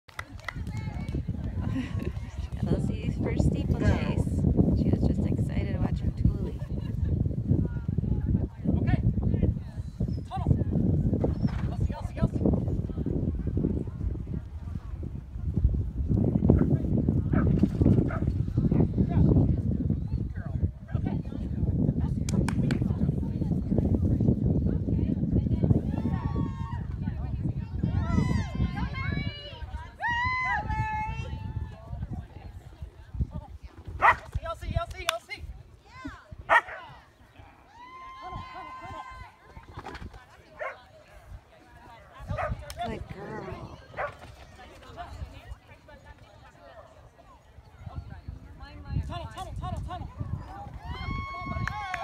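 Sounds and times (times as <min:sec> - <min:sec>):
wind rumble on microphone: 0:00.1 - 0:52.0
dog barking: 0:34.0 - 0:34.2, 0:36.5 - 0:36.8, 0:42.4 - 0:42.6, 0:44.0 - 0:44.2
background voices: 0:41.3 - 0:46.2.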